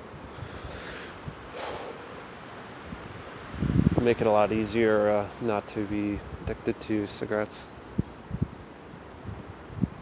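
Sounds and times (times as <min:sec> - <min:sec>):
wind noise on microphone: 0:00.0 - 0:01.9, 0:02.8 - 0:04.7, 0:06.0 - 0:06.6, 0:07.9 - 0:10.0.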